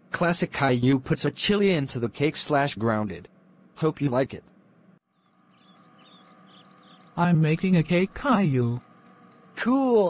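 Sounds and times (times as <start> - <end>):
faint bird chirps: 5.1 - 9.6.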